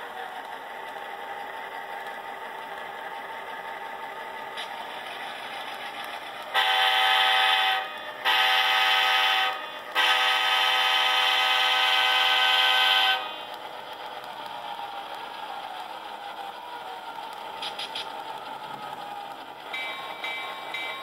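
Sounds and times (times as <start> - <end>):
locomotive horn blasts: 6.5 - 13.3.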